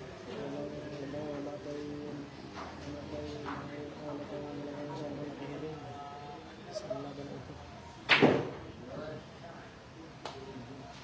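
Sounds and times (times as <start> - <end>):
murmur of crowd chatter: 0.0 - 11.0
pool cue striking ball: 8.1 - 8.6.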